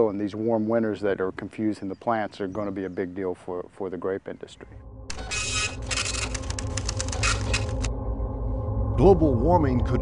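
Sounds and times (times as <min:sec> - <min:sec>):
loud rasping noise: 0:05.1 - 0:07.9
machinery humming: 0:05.1 - 0:09.1.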